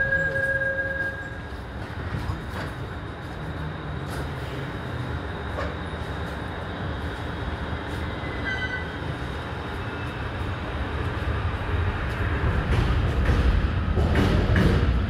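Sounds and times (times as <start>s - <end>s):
electric train rumbling: 0.0s - 15.0s.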